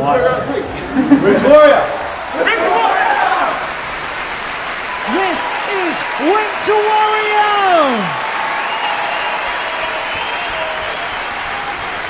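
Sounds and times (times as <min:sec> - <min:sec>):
audience applauding: 0:00.8 - 0:12.0
person shouting: 0:05.1 - 0:08.2.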